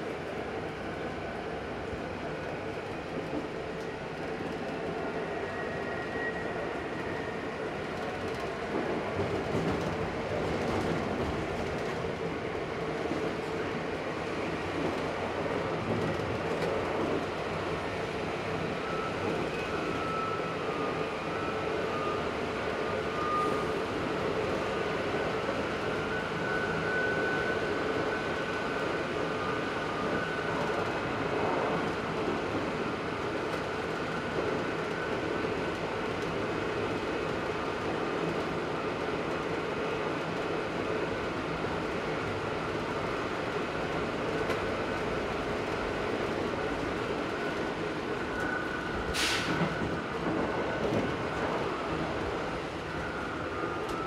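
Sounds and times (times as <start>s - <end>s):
railcar engine and wheels running: 0.0s - 54.0s.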